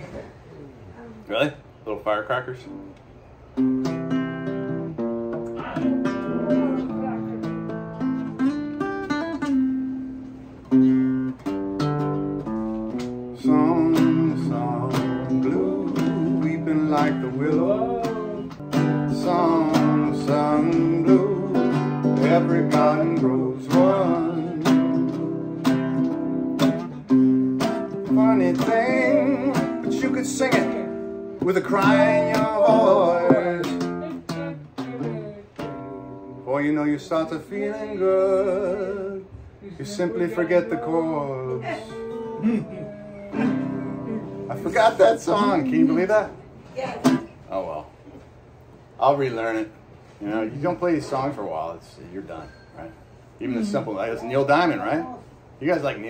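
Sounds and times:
classical guitar strummed chords: 3.6 - 39.2, 40.0 - 47.4
man's voice: 39.8 - 46.3.

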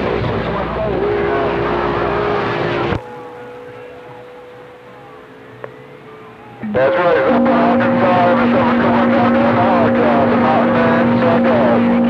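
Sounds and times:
steady radio whistle: 0.9 - 12.0
radio static: 2.2 - 12.0.

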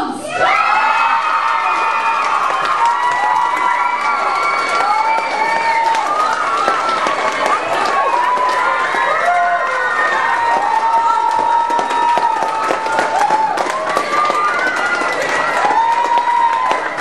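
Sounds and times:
crowd cheering and screaming: 0.2 - 17.0.

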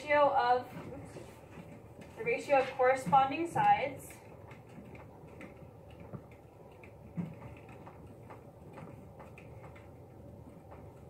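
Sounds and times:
low room hum: 0.0 - 11.0
pen writing on whiteboard: 0.9 - 11.0.

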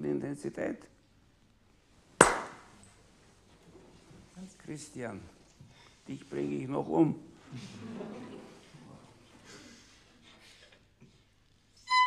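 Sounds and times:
sharp smack with reverberant tail: 2.2 - 2.7.

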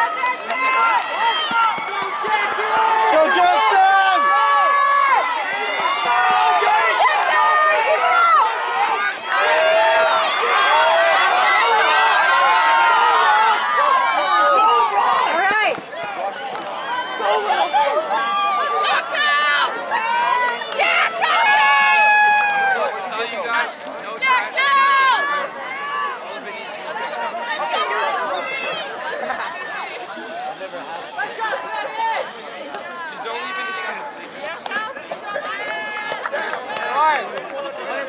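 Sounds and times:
spectators shouting and cheering: 0.0 - 38.0.

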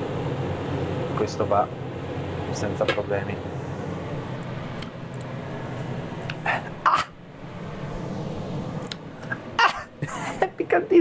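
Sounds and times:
range hood fan humming: 0.0 - 11.0.

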